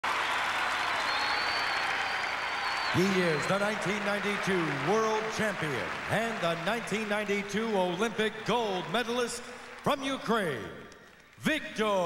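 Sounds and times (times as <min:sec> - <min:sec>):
audience clapping: 0:00.0 - 0:12.0
high whistle: 0:00.6 - 0:03.9.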